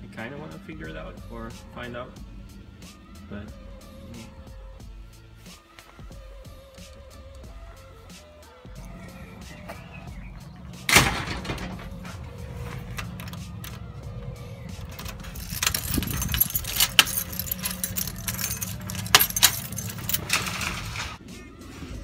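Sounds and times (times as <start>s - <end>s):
background music: 0.0s - 22.0s
keys jangling: 11.6s - 21.2s
key turning in door lock: 12.8s - 13.9s, 14.8s - 20.9s.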